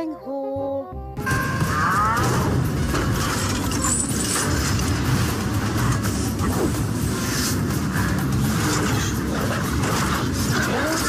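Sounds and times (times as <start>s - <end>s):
action film music: 0.9s - 11.0s.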